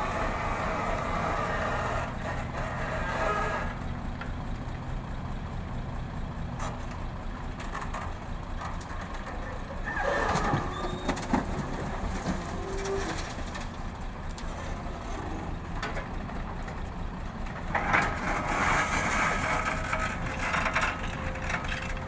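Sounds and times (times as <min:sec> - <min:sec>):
diesel engines running: 0:00.0 - 0:22.0
hydraulics whining: 0:00.0 - 0:22.0.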